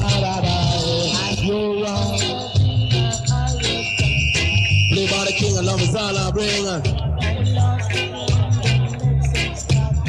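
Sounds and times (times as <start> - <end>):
deejay chanting: 0.0 - 10.0
reggae riddim with heavy bass: 0.0 - 10.0.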